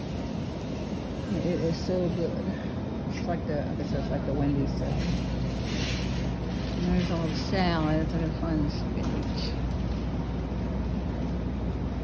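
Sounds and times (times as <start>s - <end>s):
shopping cart wheels rolling: 0.0s - 2.5s, 3.1s - 10.1s.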